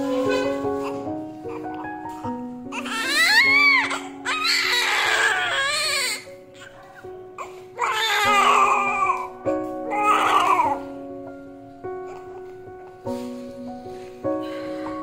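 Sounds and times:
newborn baby crying: 0.0 - 6.8, 7.4 - 10.8
music with sustained notes: 0.0 - 15.0.

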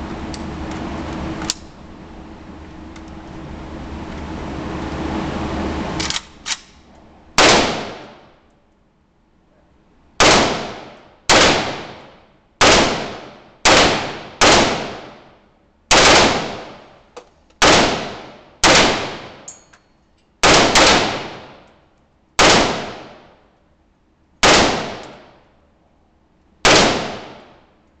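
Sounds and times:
rifle shots echoing: 7.4 - 8.3, 10.2 - 15.2, 15.9 - 16.9, 17.6 - 19.5, 20.4 - 21.6, 22.4 - 23.3, 24.4 - 25.4, 26.6 - 27.6.

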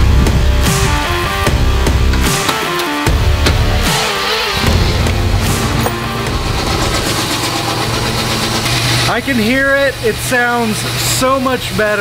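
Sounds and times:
rock music: 0.0 - 9.1
car engine running: 0.1 - 10.2.

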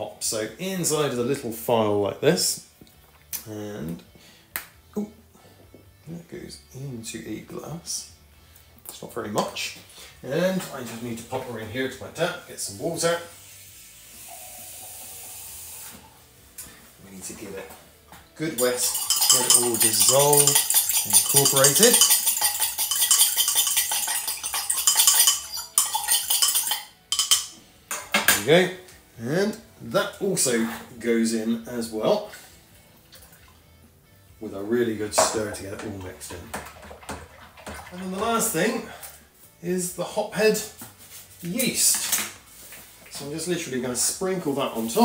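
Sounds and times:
fork clinking in glass: 18.6 - 27.5.

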